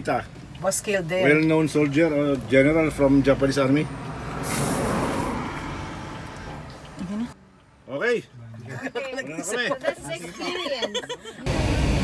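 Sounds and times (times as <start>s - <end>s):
vehicle passing by: 2.6s - 7.4s.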